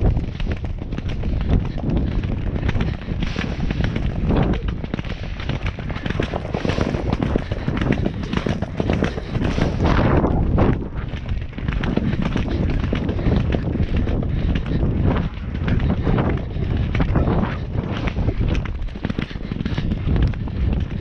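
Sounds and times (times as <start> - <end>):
horse hoofbeats galloping on turf: 0.0 - 21.0
wind rumble on microphone: 0.0 - 21.0.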